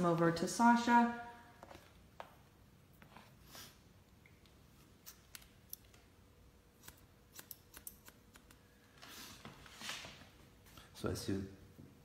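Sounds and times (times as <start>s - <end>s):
scissors snipping wet hair: 6.8s - 8.6s.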